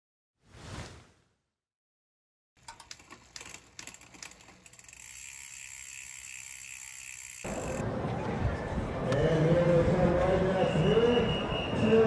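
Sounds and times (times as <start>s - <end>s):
bicycle freewheel ratchet clicking: 2.6s - 7.8s
outdoor noise: 2.6s - 12.0s.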